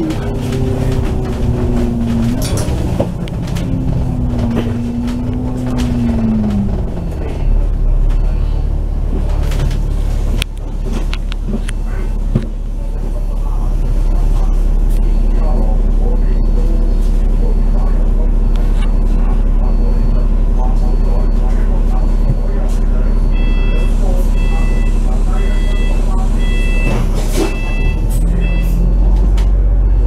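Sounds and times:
bus diesel engine idling: 0:00.0 - 0:30.0
faint high beep: 0:13.3 - 0:29.0.

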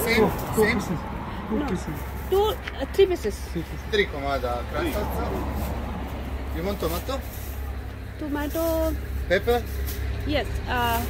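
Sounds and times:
people speaking: 0:08.2 - 0:11.0.

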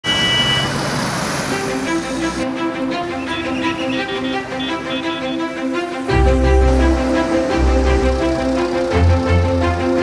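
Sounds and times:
street traffic: 0:00.0 - 0:10.0
bowed-string music: 0:01.5 - 0:10.0.

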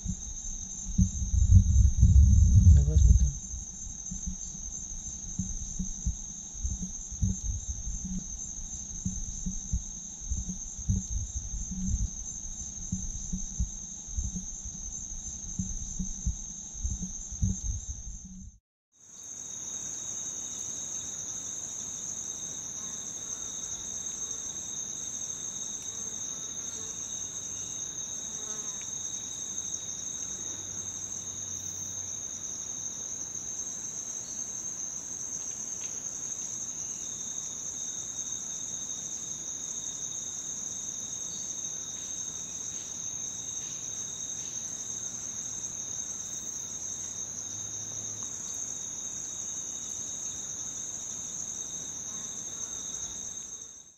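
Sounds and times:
high-pitched insect chorus: 0:00.0 - 0:53.9
lower-pitched insect song: 0:00.0 - 0:53.9.

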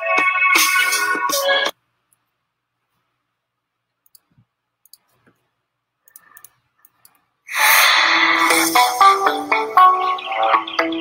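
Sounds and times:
computer mouse clicks: 0:04.0 - 0:07.3.

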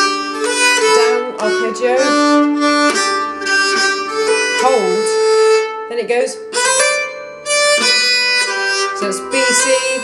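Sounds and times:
bowed keyed fiddle notes: 0:00.0 - 0:10.0.

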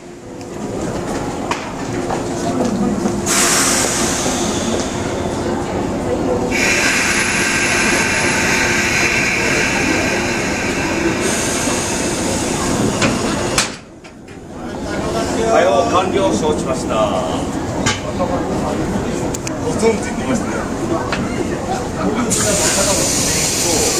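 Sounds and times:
electric train humming: 0:00.0 - 0:23.9
air hissing: 0:03.2 - 0:05.5, 0:06.5 - 0:13.6, 0:22.3 - 0:23.9.

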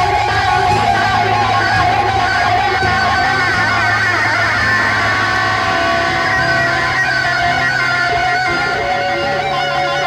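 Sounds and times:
electric guitar sustained notes: 0:00.0 - 0:10.0
steady low end: 0:00.0 - 0:10.0.

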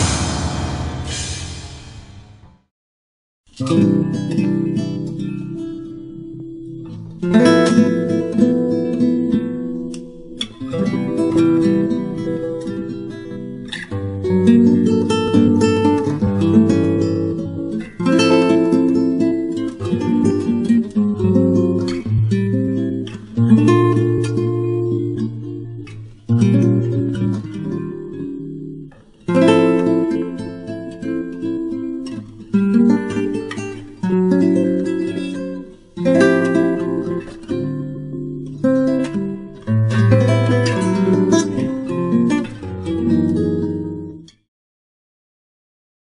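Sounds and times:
acoustic guitar chords: 0:00.0 - 0:01.8, 0:03.5 - 0:44.5.

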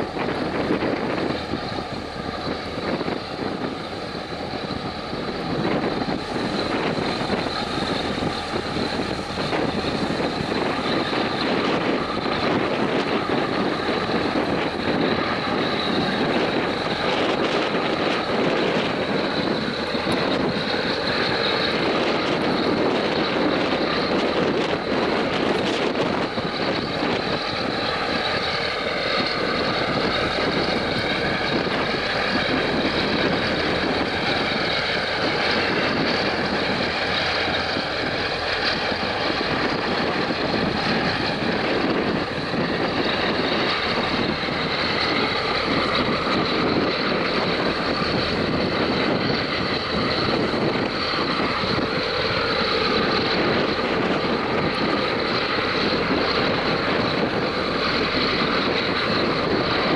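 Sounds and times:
tugboat engine: 0:00.0 - 0:59.9
wind on microphone: 0:00.0 - 0:59.9.

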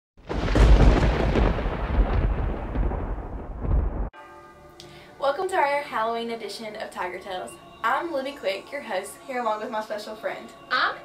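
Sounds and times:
thunder crack and rumble: 0:00.2 - 0:04.1.

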